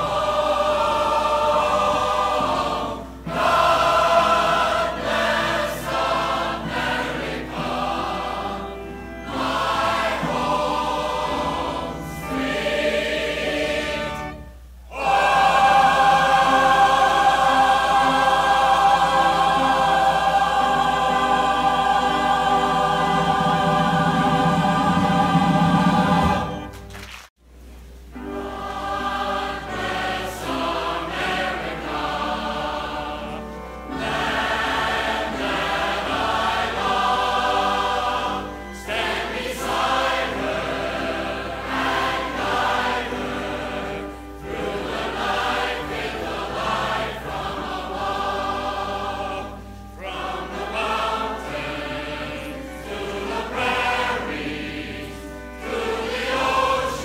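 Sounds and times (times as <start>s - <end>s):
choir singing: 0.0s - 26.8s, 28.2s - 57.0s.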